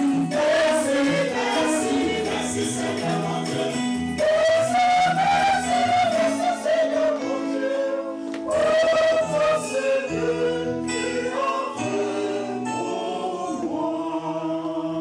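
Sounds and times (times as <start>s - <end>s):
instrumental accompaniment: 0.0s - 14.4s
choir singing a hymn: 0.0s - 15.0s.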